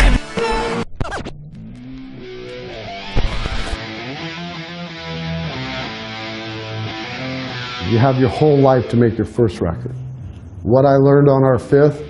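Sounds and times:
quiet music with held notes: 3.8 - 10.6.

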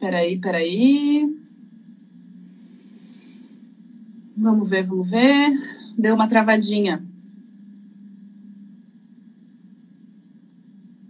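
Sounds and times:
faint room tone hum and hiss: 0.0 - 11.0.

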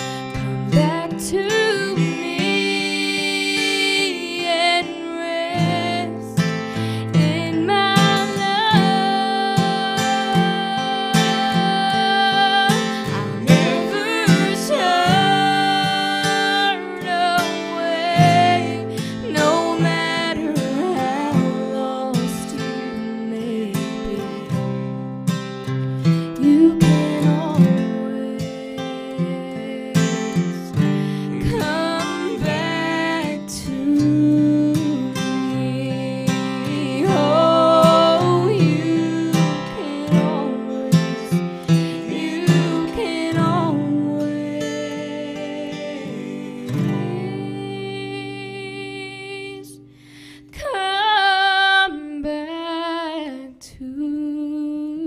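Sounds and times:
woman singing: 0.0 - 25.1, 26.0 - 55.0
strummed acoustic guitar: 0.0 - 51.9.

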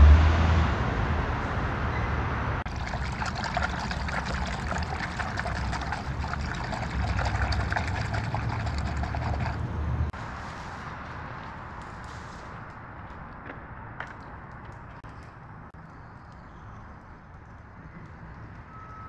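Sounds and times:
hand splashing water in bucket: 2.7 - 9.6.

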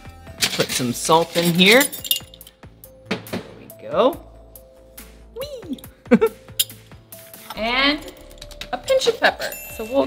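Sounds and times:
metal measuring spoons clinking: 0.4 - 2.6, 6.6 - 6.8.

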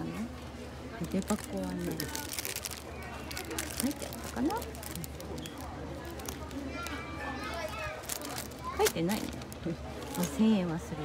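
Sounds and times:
plastic wrapping rustling: 1.0 - 10.7
child talking: 6.6 - 9.2.

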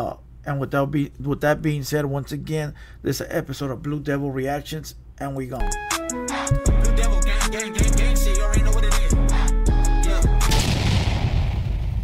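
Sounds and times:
outro music: 5.6 - 10.6
heavy boom with rumbling tail: 10.5 - 12.0.

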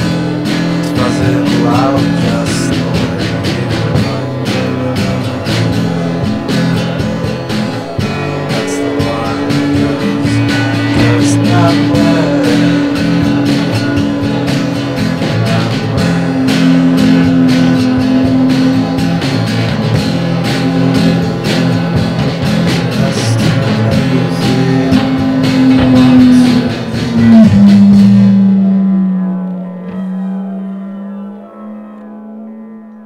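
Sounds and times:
rock song on guitar and drums: 0.0 - 28.7
person singing a word: 0.8 - 7.2, 8.0 - 13.7, 15.3 - 18.8.

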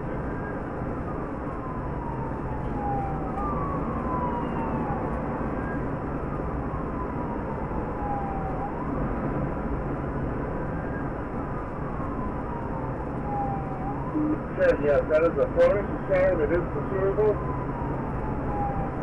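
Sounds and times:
car engine and tyre noise: 0.0 - 19.0
police siren wailing: 0.0 - 19.0.

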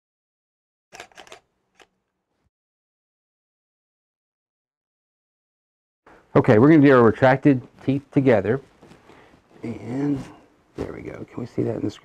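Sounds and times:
camera handling clicks and rustles: 1.0 - 1.9.

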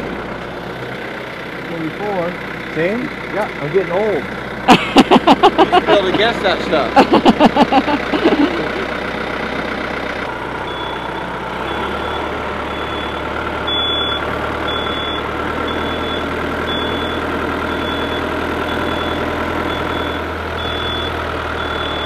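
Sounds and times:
tractor diesel engine running: 0.0 - 22.0
high-pitched safety beeps: 10.7 - 22.0.

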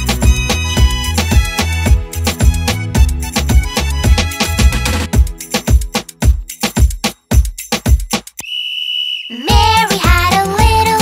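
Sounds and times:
high-pitched whistle tone: 8.4 - 9.6
children's song with singing: 9.3 - 11.0.

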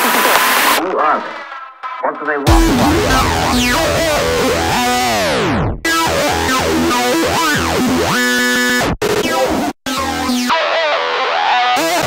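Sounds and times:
synth chord with downward glide: 2.5 - 5.8.

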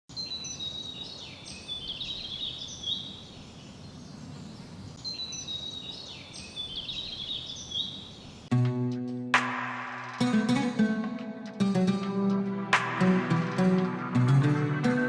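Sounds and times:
birds twittering: 0.1 - 8.5.

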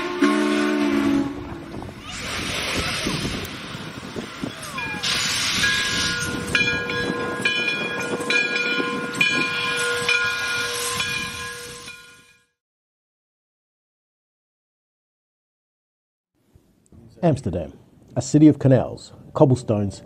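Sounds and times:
steam train whistle: 0.0 - 1.8, 9.7 - 11.9
hissing steam: 1.7 - 6.5.

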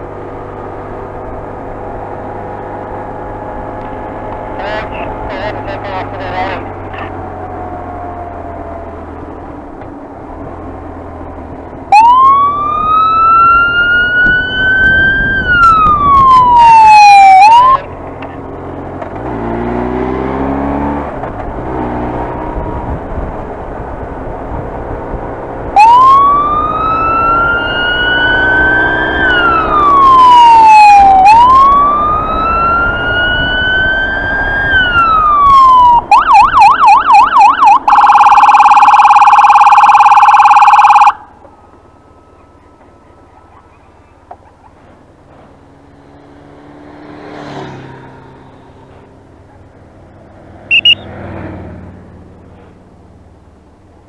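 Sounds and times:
motorcycle engine: 0.0 - 54.0
police siren wailing: 2.4 - 9.4, 11.9 - 17.9, 25.7 - 44.8, 50.7 - 51.0
siren fast warble: 11.9 - 17.9, 25.8 - 41.3, 50.7 - 51.1
wind noise: 12.6 - 17.4, 21.3 - 26.8.

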